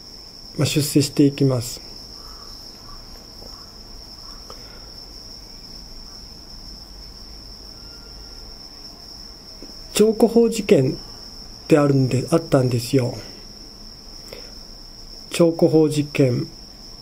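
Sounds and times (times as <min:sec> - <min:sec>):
crickets trilling: 0:00.0 - 0:17.0.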